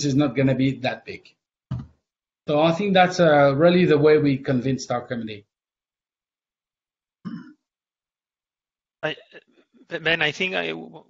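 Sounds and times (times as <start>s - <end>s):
person clearing throat: 7.3s - 7.7s.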